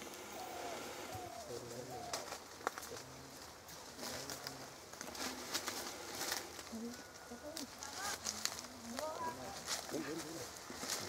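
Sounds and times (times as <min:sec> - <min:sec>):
dove cooing: 0:00.0 - 0:02.4.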